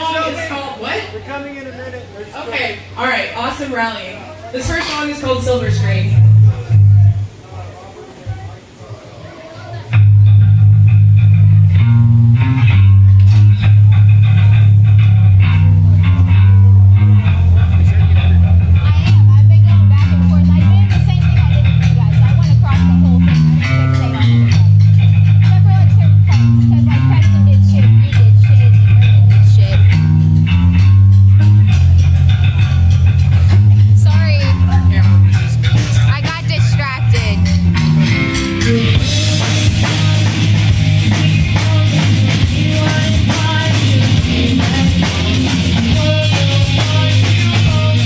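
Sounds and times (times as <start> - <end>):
electric guitar: 4.3 - 7.4, 8.0 - 48.0
heavy bass line: 4.6 - 7.4, 9.9 - 48.0
rock band playing live: 4.6 - 7.4, 9.9 - 48.0.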